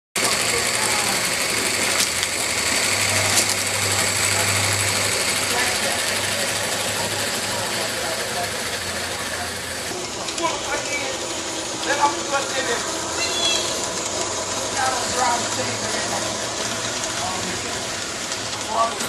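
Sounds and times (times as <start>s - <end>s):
model train clattering on track: 0.2s - 19.0s.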